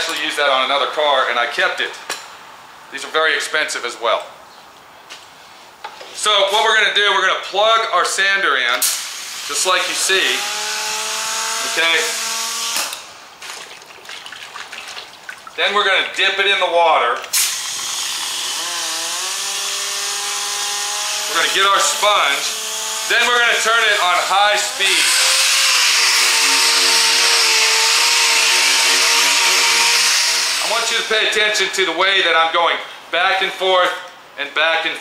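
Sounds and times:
finish sander humming: 9.5s - 12.8s, 17.6s - 31.2s.

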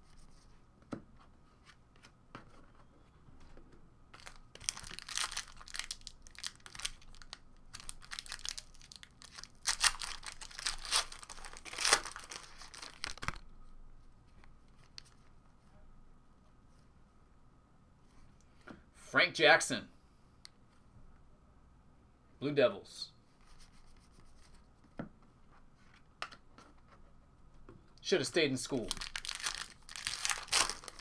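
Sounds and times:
foil wrapper tearing and crinkling: 4.2s - 13.4s, 28.8s - 31.0s.

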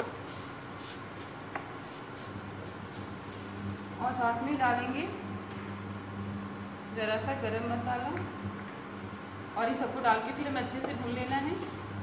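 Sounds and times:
faint sizzle of frying in oil: 0.0s - 12.0s
low electrical hum: 0.0s - 12.0s.

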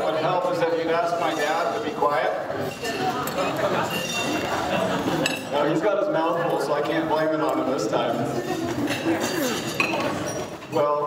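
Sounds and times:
crowd of diners chattering: 0.0s - 11.0s
dishes and cutlery clinking: 1.2s - 1.9s, 2.6s - 5.6s, 8.4s - 10.8s.

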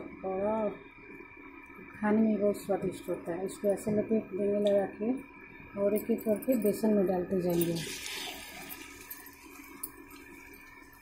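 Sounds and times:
fritters sizzling in hot oil: 7.7s - 11.0s.

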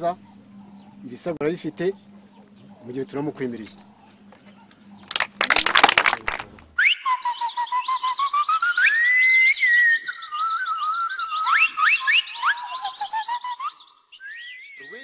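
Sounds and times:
birds chirping rapidly: 0.0s - 6.0s, 9.4s - 15.0s
bird whistles gliding: 6.8s - 15.0s.

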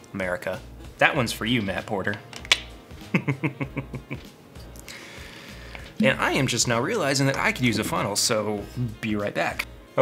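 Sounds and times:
man laughing: 3.0s - 4.3s.

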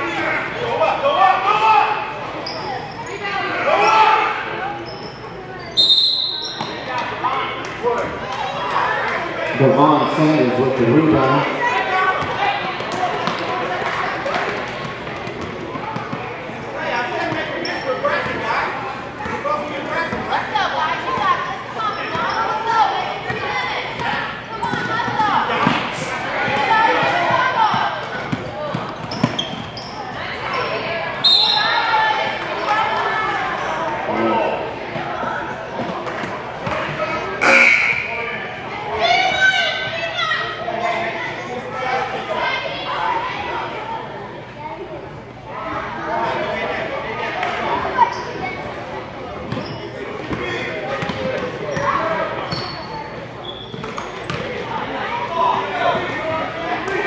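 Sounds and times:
players and spectators voices: 0.0s - 57.0s.

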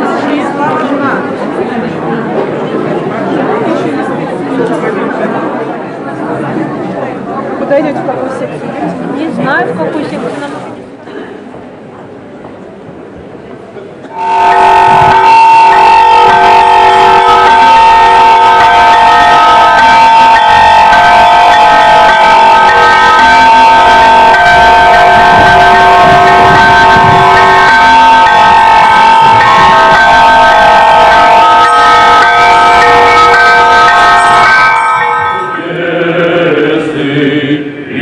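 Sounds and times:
loud sustained chord: 14.1s - 37.2s.

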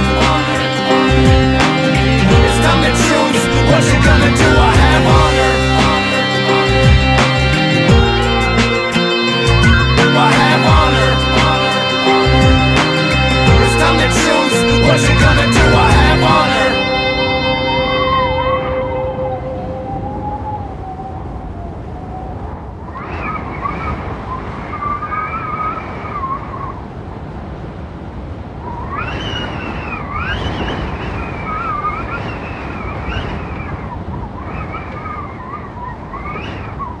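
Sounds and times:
song music: 0.0s - 20.5s
wavering wails gliding: 0.0s - 26.8s
steady rushing noise: 0.0s - 34.5s.

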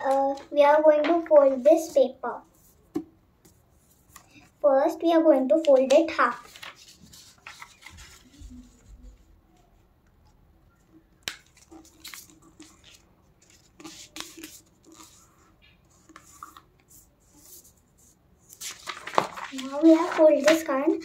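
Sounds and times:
paper rustling and crackling: 5.6s - 9.3s, 11.2s - 17.7s, 18.4s - 21.0s.

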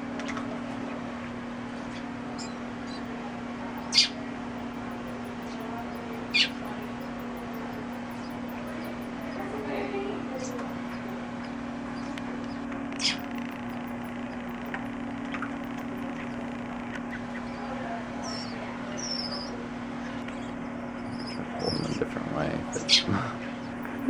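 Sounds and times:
low hum: 0.0s - 24.0s
bat squeaking: 3.8s - 4.2s, 5.0s - 9.7s, 10.3s - 22.0s.

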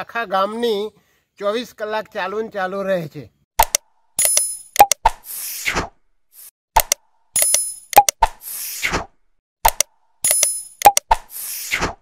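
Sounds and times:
sharp clicks: 3.6s - 5.1s, 6.8s - 8.3s, 9.6s - 11.2s.

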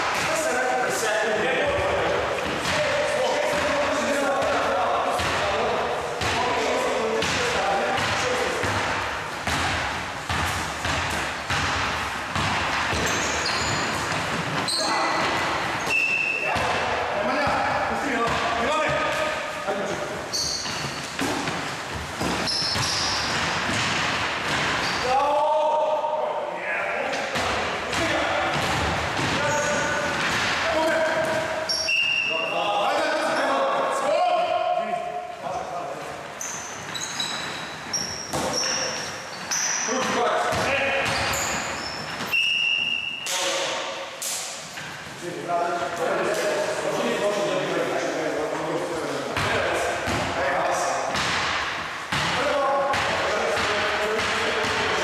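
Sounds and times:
basketball bouncing on wooden floor: 7.2s - 15.5s, 17.4s - 19.2s, 40.5s - 42.2s, 49.4s - 50.3s
sneaker squeaks: 7.2s - 25.2s, 27.9s - 33.6s, 35.2s - 45.0s.

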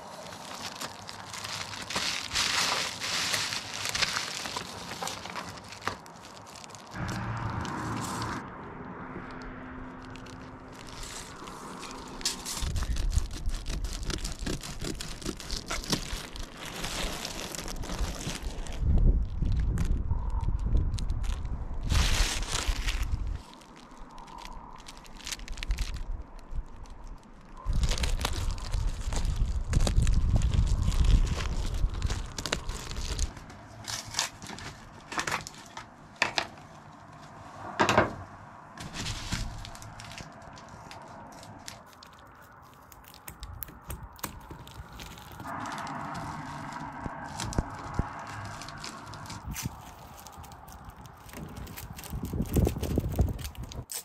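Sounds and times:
bubble-foil insulation crinkling: 0.0s - 8.4s, 9.9s - 37.3s, 38.8s - 54.0s
sharp clicks and scrapes: 9.2s - 18.5s.

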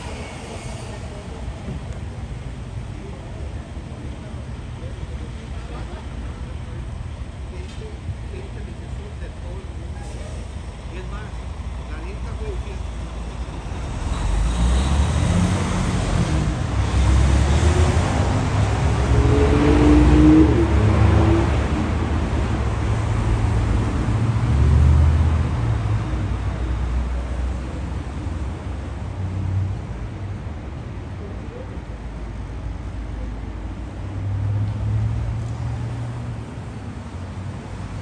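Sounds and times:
motor vehicles passing: 12.8s - 38.0s.

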